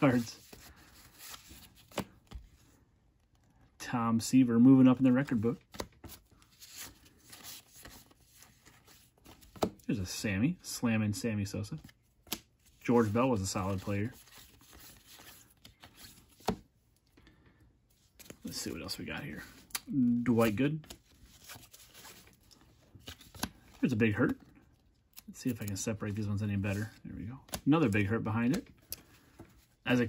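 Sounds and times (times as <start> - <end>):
cardboard cards rustling and sliding: 0.0 - 3.5, 4.6 - 10.3, 11.1 - 16.8, 17.9 - 30.0.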